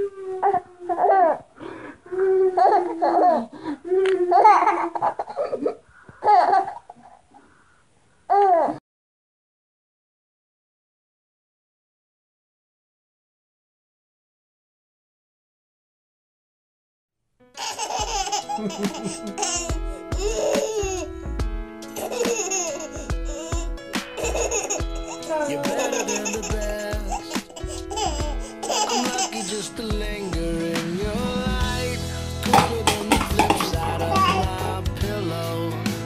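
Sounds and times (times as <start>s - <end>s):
background music: 17.4s - 36.0s
baby squealing: 17.6s - 21.1s, 22.0s - 29.6s, 33.3s - 34.8s.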